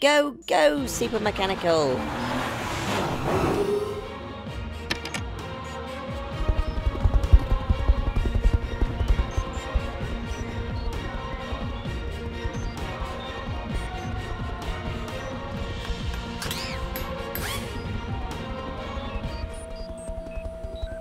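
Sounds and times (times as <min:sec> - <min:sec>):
whooshing spin effect: 0:02.0 - 0:04.2
small propeller whirring: 0:06.2 - 0:21.0
cartoon music: 0:09.1 - 0:21.0.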